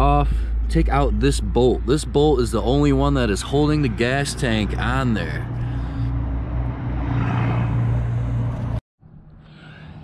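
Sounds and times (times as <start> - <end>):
low motor drone: 0.0 - 10.0.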